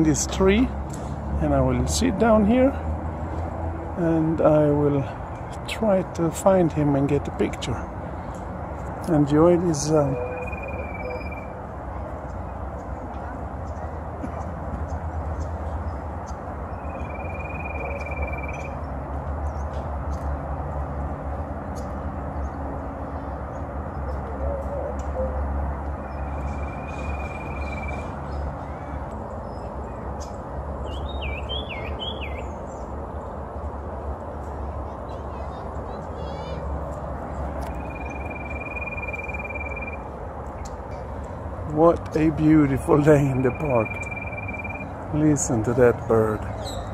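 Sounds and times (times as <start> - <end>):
bird whistling: 10.2 - 11.5, 16.7 - 18.8, 26.2 - 28.1, 37.8 - 40.0, 43.4 - 44.9.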